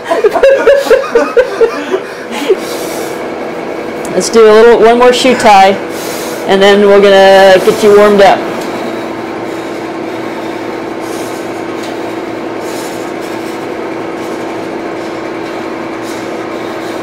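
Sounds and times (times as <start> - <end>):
steady machine hum: 0.0 - 17.0.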